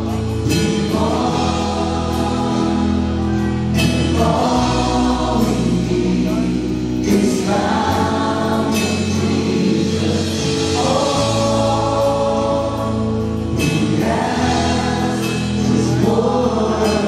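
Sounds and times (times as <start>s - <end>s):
live worship band: 0.0s - 17.0s.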